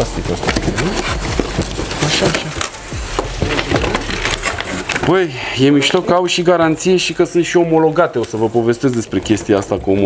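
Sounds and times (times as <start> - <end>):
cardboard packaging scraping and rustling: 0.0 - 5.2.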